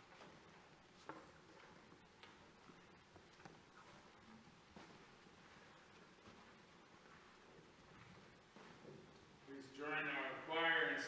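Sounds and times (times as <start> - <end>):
soft shuffling of people: 0.0 - 11.0.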